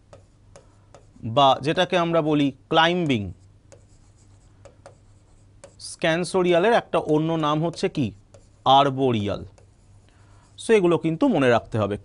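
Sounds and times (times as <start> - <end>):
pen tapping on whiteboard screen: 0.0 - 1.7, 2.3 - 5.8, 6.6 - 8.6.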